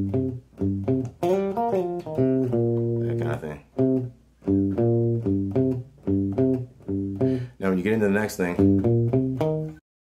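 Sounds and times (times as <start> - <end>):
electric guitar riff: 0.0 - 9.8.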